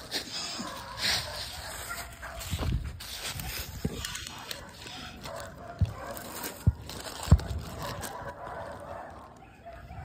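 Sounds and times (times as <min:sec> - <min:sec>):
scuffling in dry leaves: 0:00.0 - 0:09.5.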